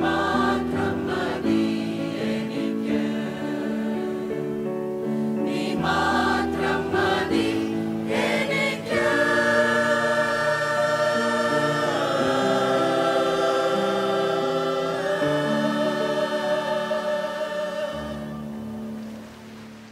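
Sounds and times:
mixed choir singing: 0.0s - 19.0s
piano accompaniment: 0.0s - 19.9s.

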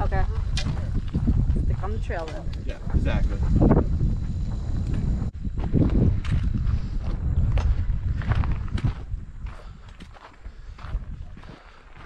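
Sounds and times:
low rumble: 0.0s - 11.5s
footsteps on rocky dirt trail: 0.0s - 12.0s.

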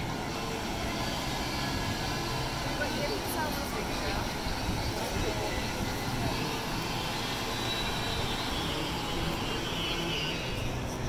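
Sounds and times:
people's voices: 1.8s - 11.0s.

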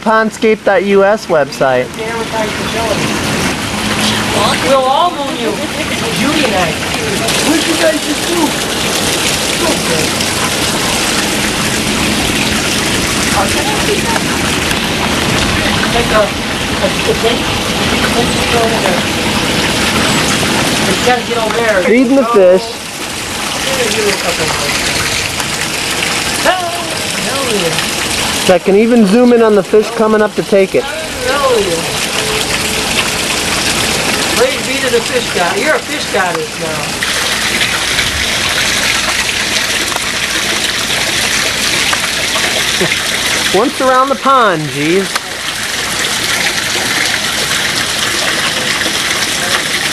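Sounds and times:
running water in a pond: 0.0s - 49.9s
person's voice: 28.5s - 32.3s, 43.6s - 45.1s.

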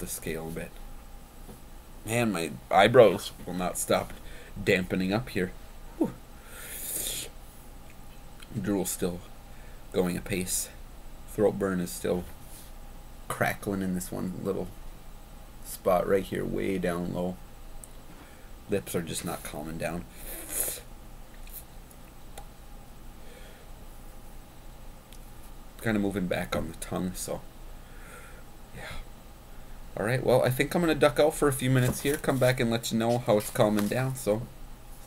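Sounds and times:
man's hissing breath: 6.4s - 7.3s, 27.8s - 29.1s
man hissing breath through lips: 6.4s - 7.4s, 20.2s - 20.9s.

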